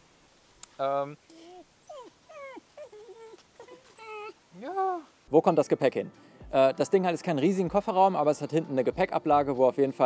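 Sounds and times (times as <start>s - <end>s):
dog whimpering: 1.3s - 5.1s.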